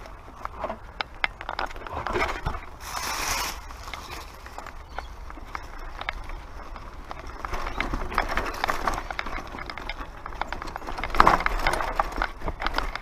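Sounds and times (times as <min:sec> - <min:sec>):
bike rattling and clicking: 0:00.0 - 0:13.0
hissing scrape: 0:02.8 - 0:03.7.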